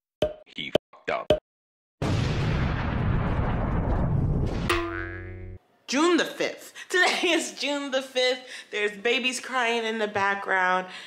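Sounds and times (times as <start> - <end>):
steady pitched tone: 4.7 - 5.6.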